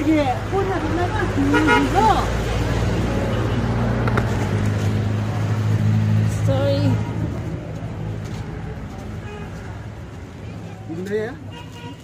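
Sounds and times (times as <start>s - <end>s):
passers-by voices: 0.0s - 12.0s.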